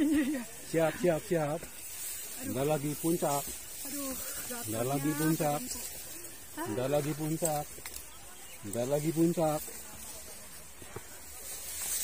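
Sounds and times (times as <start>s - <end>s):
rustling of tall grass: 0.0s - 12.0s.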